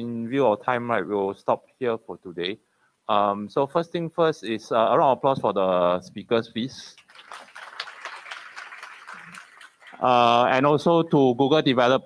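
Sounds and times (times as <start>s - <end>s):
audience applauding: 7.0s - 10.5s.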